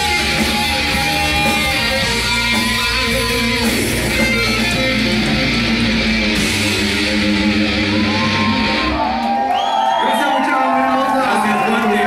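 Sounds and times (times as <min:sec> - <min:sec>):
held distorted guitar tones: 0:00.0 - 0:09.3
heavy metal band playing: 0:00.0 - 0:09.5.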